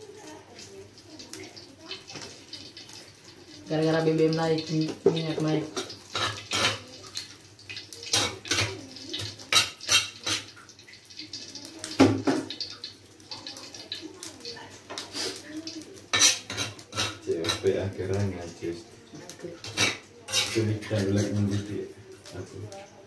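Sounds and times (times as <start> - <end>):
dishes and utensils clattering: 4.7 - 10.6, 11.8 - 12.8, 14.7 - 18.3, 19.1 - 21.7.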